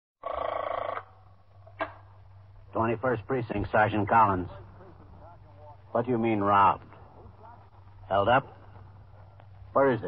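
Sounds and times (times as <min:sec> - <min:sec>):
low steady hum: 0:00.2 - 0:10.0.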